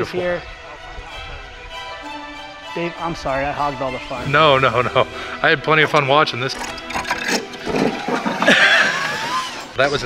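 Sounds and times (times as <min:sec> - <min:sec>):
man speaking: 0:02.8 - 0:06.8
man laughing: 0:04.3 - 0:05.2, 0:08.4 - 0:09.4.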